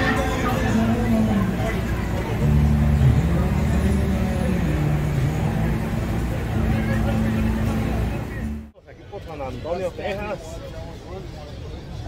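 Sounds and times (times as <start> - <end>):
vehicle engine rumbling: 0.0 - 8.7.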